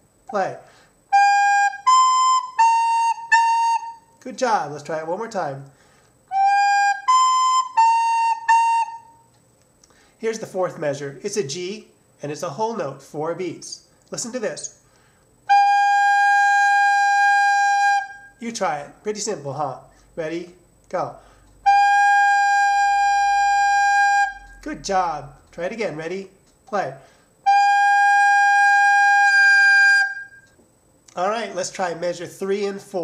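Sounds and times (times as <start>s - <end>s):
recorder playing notes: 1.1s - 4.1s, 6.3s - 9.3s, 15.5s - 18.4s, 21.6s - 24.8s, 27.4s - 30.6s
recorder holding a long note: 21.6s - 24.6s.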